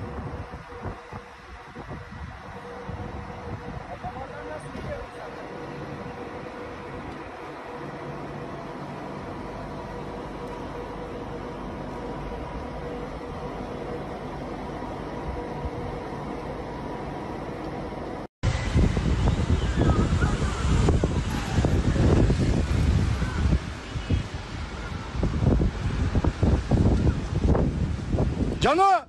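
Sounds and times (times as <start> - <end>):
gusty wind buffeting microphone: 0.0 - 28.8.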